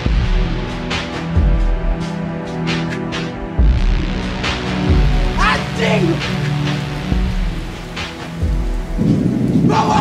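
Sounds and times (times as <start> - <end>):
film soundtrack music: 0.0 - 10.0
deep thunder-like rumble: 8.4 - 10.0.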